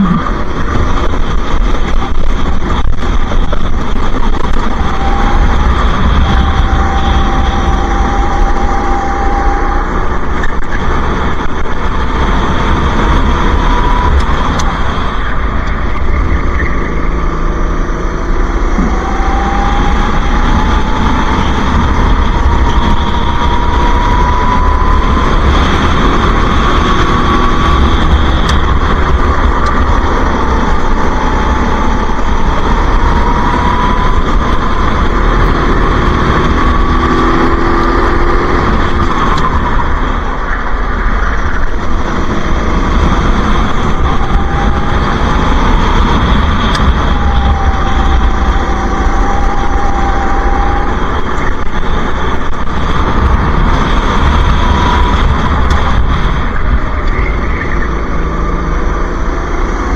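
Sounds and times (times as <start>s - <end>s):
go-kart engine racing: 0.0s - 59.9s.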